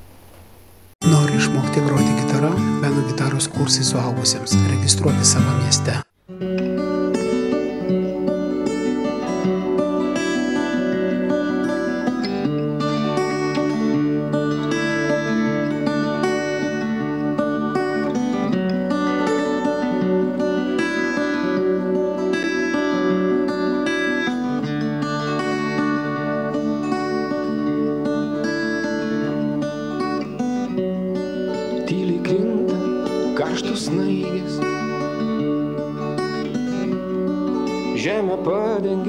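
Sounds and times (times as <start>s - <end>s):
fingerstyle acoustic guitar: 1.0s - 39.0s.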